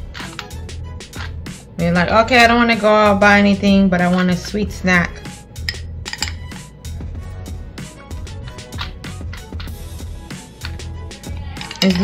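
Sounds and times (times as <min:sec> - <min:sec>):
background music: 0:00.0 - 0:12.0
metal spoon clicking: 0:05.6 - 0:06.5, 0:11.6 - 0:12.0.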